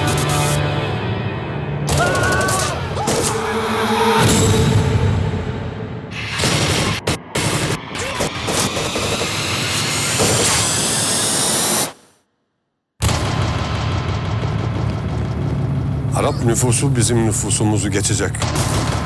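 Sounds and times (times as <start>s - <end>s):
loud booming noise: 13.0s - 17.6s
low rumble: 13.0s - 17.6s.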